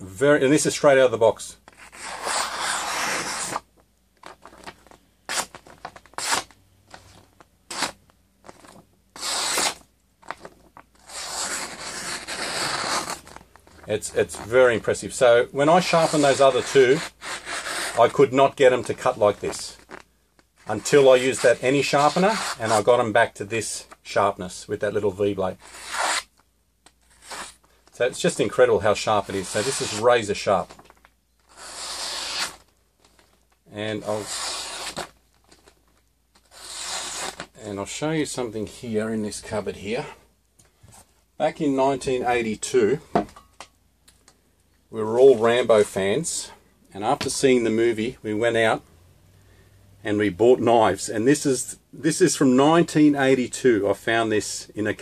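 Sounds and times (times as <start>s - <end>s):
knife slicing paper: 1.8s - 3.6s, 9.2s - 9.8s, 31.5s - 32.7s, 34.0s - 35.1s, 36.4s - 37.5s.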